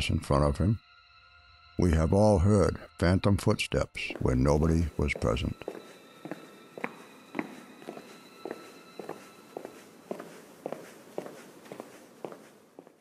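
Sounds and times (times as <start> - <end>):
footsteps walking: 4.0 - 13.0.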